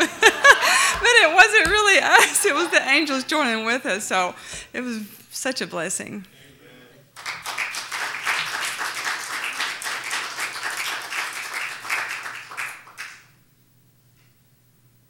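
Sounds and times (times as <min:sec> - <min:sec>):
congregation applauding: 0:07.1 - 0:13.4.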